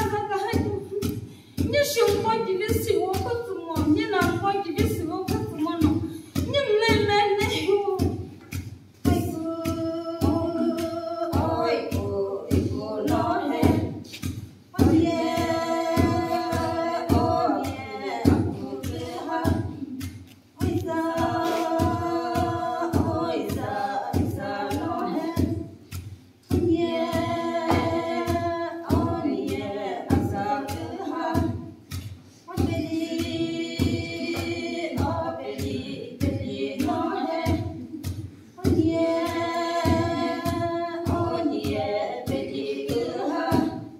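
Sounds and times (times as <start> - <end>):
voices singing unaccompanied: 0.0 - 8.3, 9.0 - 43.9
wooden pestles pounding mortar: 0.0 - 43.9.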